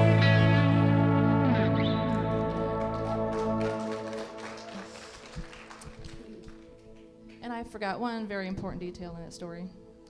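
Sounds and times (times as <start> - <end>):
band chord ringing out: 0.0 - 4.2
bass: 0.0 - 9.8.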